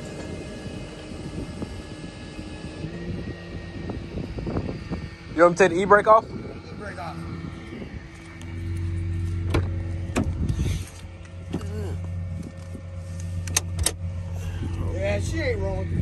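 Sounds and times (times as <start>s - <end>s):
truck engine running: 0.0s - 16.0s
car control and door clicks: 13.4s - 14.0s.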